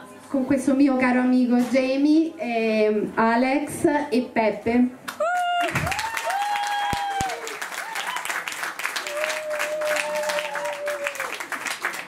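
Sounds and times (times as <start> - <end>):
crowd whooping: 5.2 - 11.7
audience clapping and cheering: 5.2 - 12.0.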